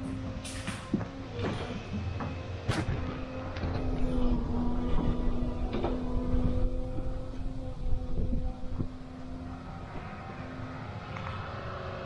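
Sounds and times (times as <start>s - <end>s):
excavator engine running: 0.0s - 12.0s.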